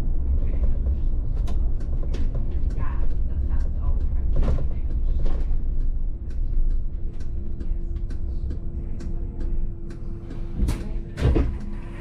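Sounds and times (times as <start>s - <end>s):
bus engine low rumble: 0.0s - 12.0s
steady hum: 2.6s - 12.0s.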